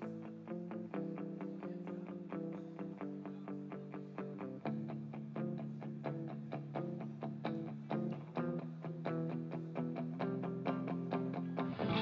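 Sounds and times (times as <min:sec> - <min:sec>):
electric guitar picking notes: 0:05.5 - 0:12.0.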